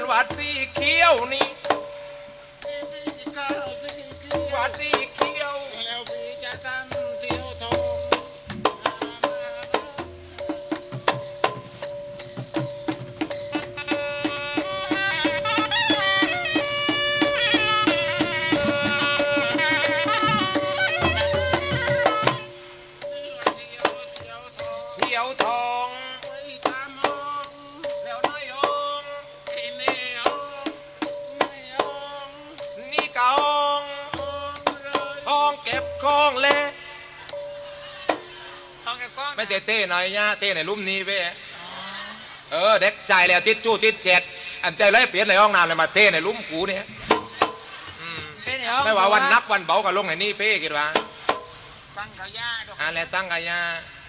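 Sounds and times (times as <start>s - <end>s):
soft low drum beats: 0.0s - 2.0s, 2.6s - 25.7s, 46.6s - 49.4s
ringing metallic tones: 0.0s - 39.2s
person speaking: 2.5s - 8.0s, 23.0s - 27.4s, 47.8s - 51.0s
sharp clicking strikes: 50.9s - 51.6s.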